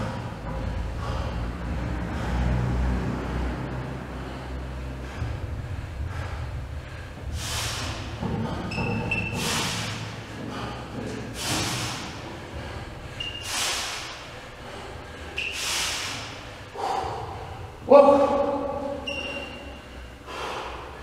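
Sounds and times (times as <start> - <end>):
man breathing hard: 0.0 - 17.9, 18.6 - 21.0.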